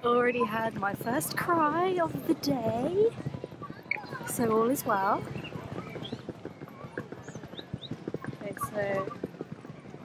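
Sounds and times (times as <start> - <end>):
passers-by voices: 0.0 - 10.0
clacking on paving stones: 0.4 - 10.0.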